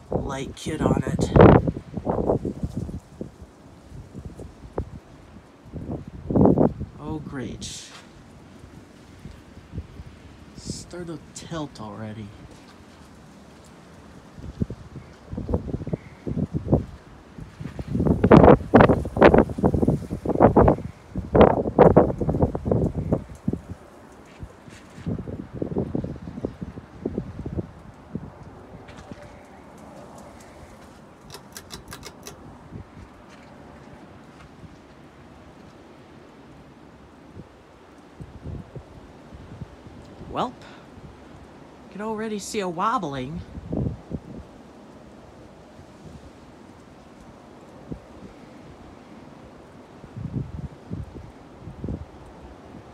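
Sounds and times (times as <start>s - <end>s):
air buffeting microphone: 0.0s - 8.2s, 14.4s - 34.8s
short high clicks: 31.2s - 32.4s.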